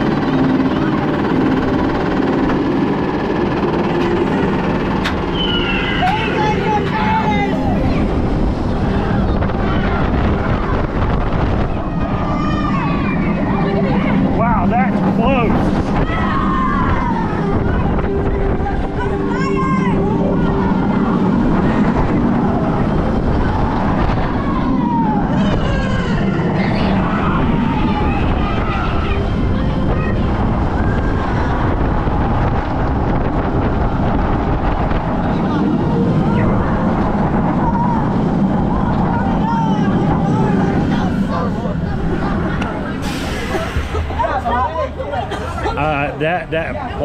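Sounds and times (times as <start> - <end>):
roller coaster train humming: 0.0 - 47.0
wind rushing over microphone: 0.0 - 47.0.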